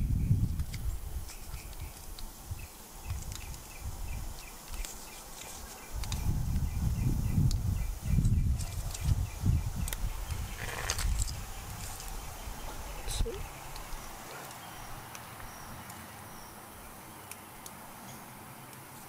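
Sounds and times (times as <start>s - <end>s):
rustle: 0.0s - 19.0s
insects ticking: 0.3s - 19.0s
tape crinkling on pipe fitting: 0.4s - 2.4s, 4.6s - 6.7s, 7.4s - 9.2s, 9.8s - 12.2s.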